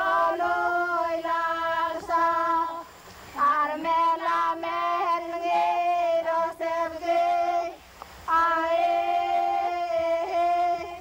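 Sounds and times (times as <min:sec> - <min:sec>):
women singing long held notes: 0:00.0 - 0:11.0.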